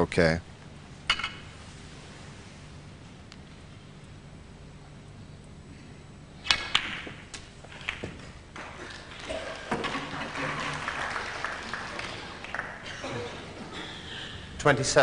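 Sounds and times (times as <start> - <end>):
cue tip hitting ball: 6.5 - 11.0
snooker balls knocking: 6.5 - 12.8.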